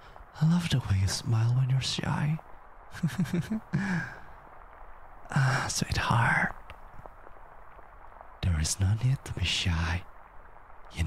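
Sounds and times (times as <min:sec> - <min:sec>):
man's breathy laugh: 0:03.0 - 0:04.2
man sighing: 0:03.4 - 0:04.4.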